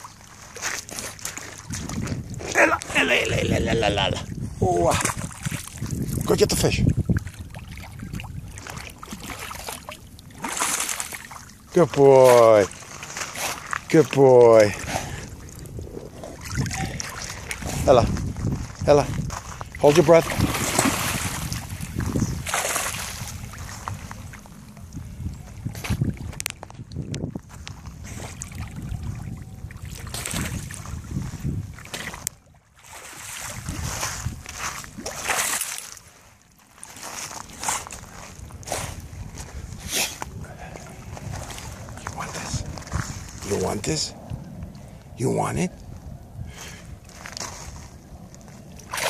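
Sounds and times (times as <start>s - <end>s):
shallow water sloshing: 0.0s - 45.1s, 46.8s - 49.0s
dog splashing through water: 20.1s - 23.4s.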